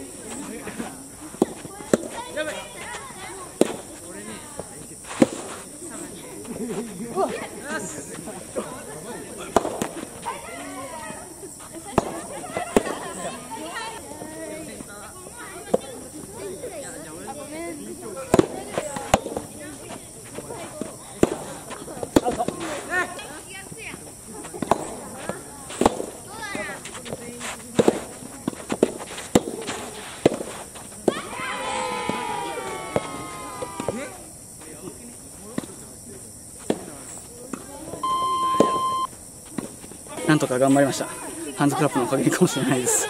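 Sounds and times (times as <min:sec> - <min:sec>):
voices: 0:00.0 - 0:43.0
tennis rackets striking ball: 0:01.3 - 0:02.2, 0:03.6 - 0:03.9, 0:09.4 - 0:10.1, 0:18.3 - 0:19.5, 0:24.6 - 0:27.2, 0:27.8 - 0:31.3, 0:38.5 - 0:38.9
electronic beep: 0:38.0 - 0:39.1.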